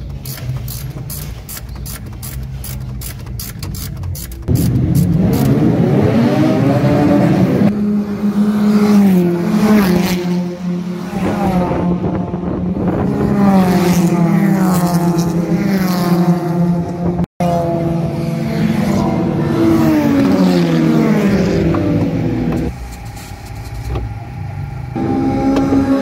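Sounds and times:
race car engines revving: 0.0 - 26.0.

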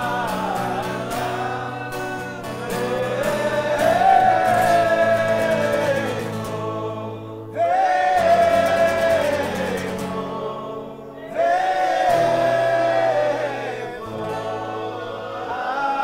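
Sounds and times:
men singing together: 0.0 - 16.0
strummed acoustic guitar: 0.0 - 16.0.

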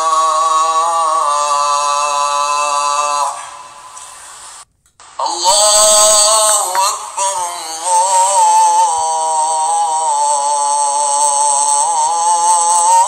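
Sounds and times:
person chanting: 0.0 - 13.0.

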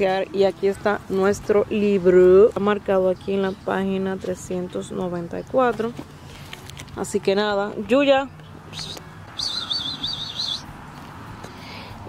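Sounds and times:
songbird warbling: 8.7 - 10.7.

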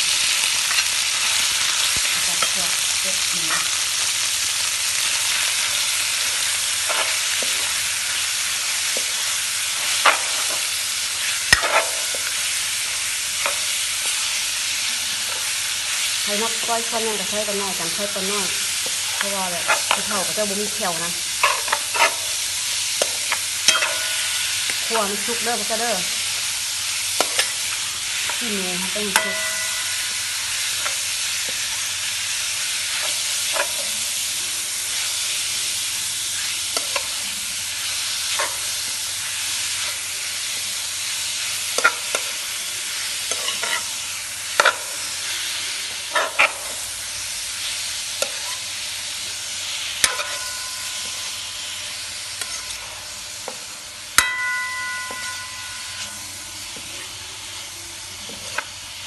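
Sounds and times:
meat sizzling in a wok: 0.0 - 59.0
spatula scraping and knocking pan: 21.4 - 24.8, 27.2 - 28.4, 43.2 - 46.8, 50.0 - 51.4, 53.4 - 57.1.

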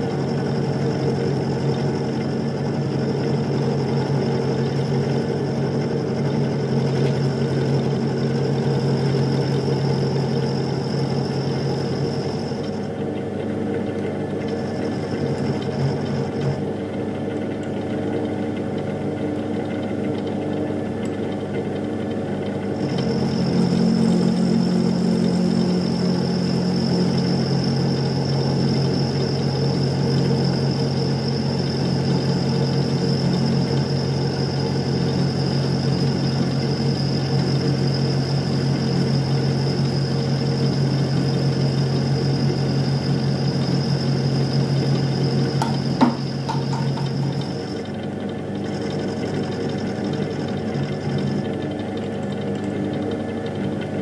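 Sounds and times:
milling machine hum and whine: 0.0 - 54.0.

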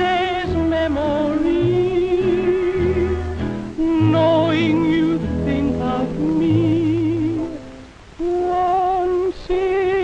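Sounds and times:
big-band ballad: 0.0 - 10.0.

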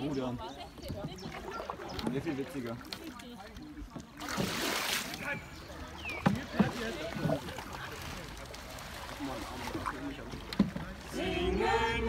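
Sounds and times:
paddle stroke in water: 0.0 - 12.0
paddle knocking against canoe: 0.6 - 3.1, 5.9 - 7.8, 9.6 - 11.2.

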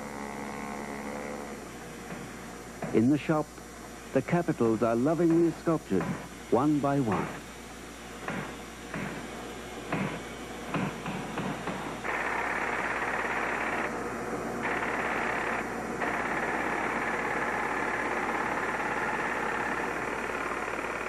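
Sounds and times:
knocks: 8.2 - 9.2, 9.9 - 11.8
power tool cutting marble: 14.6 - 21.0.

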